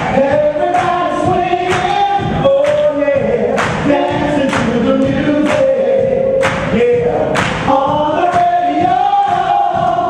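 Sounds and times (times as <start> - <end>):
male vocal group singing harmony: 0.0 - 10.0.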